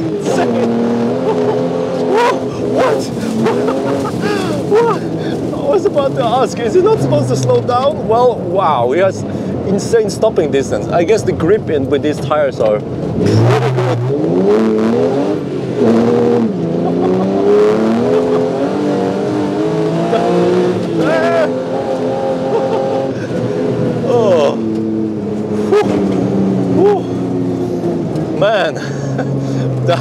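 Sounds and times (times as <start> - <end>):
car engine accelerating: 0.0 - 30.0
person laughing: 0.2 - 5.5, 16.8 - 18.7, 20.0 - 21.6, 22.4 - 23.4, 28.7 - 30.0.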